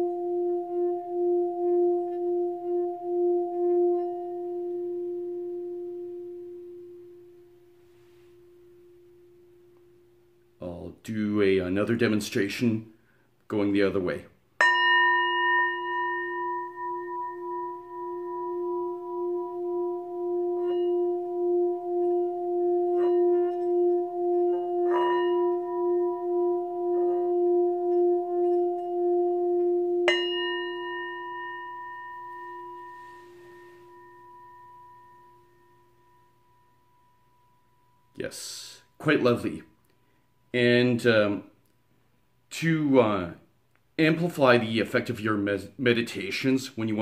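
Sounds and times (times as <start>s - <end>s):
mallet striking bowl: 0.0s - 7.4s, 14.6s - 38.0s
singing bowl humming: 0.0s - 10.6s, 14.6s - 38.2s.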